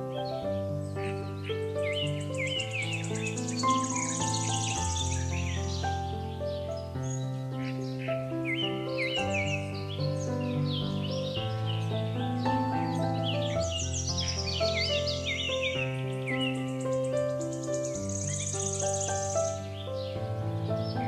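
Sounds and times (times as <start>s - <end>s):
piano music: 0.0s - 21.0s
fast high bird trill: 1.0s - 6.4s, 7.7s - 20.2s
bird chirps and whistles: 2.1s - 5.8s.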